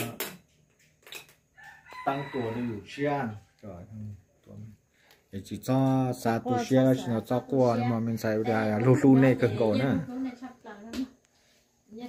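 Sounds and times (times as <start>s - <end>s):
faint rooster crowing: 1.5s - 3.8s.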